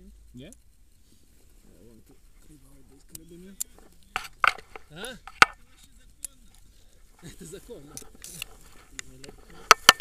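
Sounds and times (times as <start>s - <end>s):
harness gear clicking and knocking: 3.7s - 5.6s, 8.0s - 10.0s.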